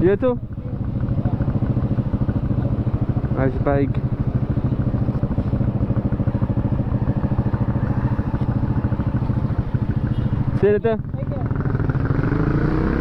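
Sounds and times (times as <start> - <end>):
motorcycle engine idling: 0.0 - 12.1.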